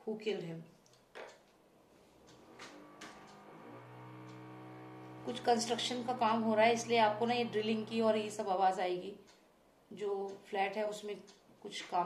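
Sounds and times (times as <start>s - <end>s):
power drill motor drone: 2.2s - 8.6s.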